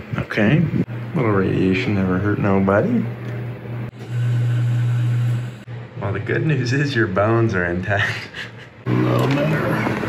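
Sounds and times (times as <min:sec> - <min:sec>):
x-ray machine electrical hum: 0:00.0 - 0:10.0.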